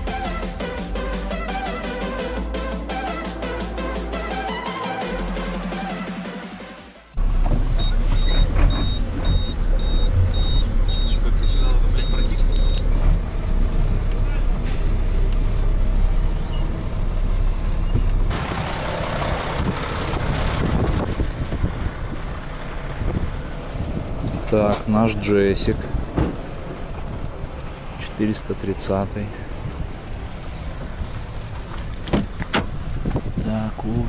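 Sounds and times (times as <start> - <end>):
truck engine rumble: 7.2 - 34.0
reversing alarm beeping: 7.7 - 12.8.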